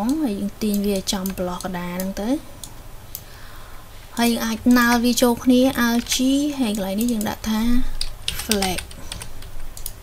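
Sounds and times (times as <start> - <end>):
computer keyboard keys clicking: 0.0 - 3.2, 5.8 - 10.0.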